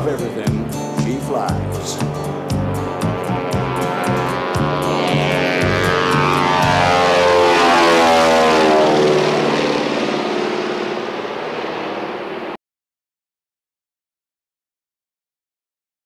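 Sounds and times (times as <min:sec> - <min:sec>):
propeller plane flying overhead: 0:00.0 - 0:12.6.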